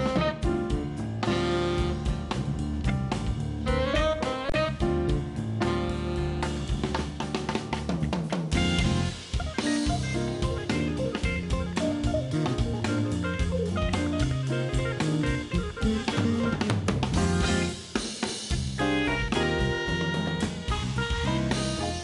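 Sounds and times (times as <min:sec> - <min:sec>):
drum kit with cymbals: 0:00.0 - 0:22.0
jazz band playing: 0:00.0 - 0:22.0
electric guitar: 0:07.6 - 0:17.9, 0:18.5 - 0:22.0.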